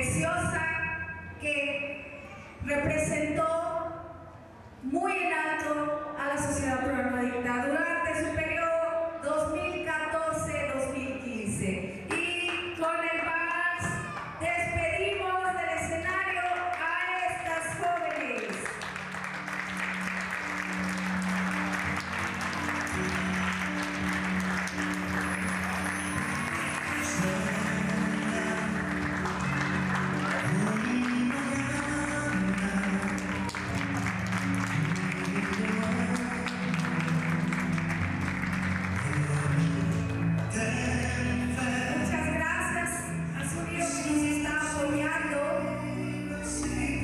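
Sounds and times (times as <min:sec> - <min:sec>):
audience applauding: 0:17.9 - 0:41.3
music with held low notes: 0:18.9 - 0:47.0.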